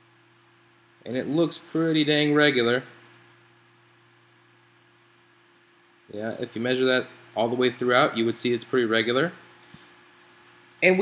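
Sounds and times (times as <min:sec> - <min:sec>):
low steady hum and hiss: 0:00.0 - 0:11.0.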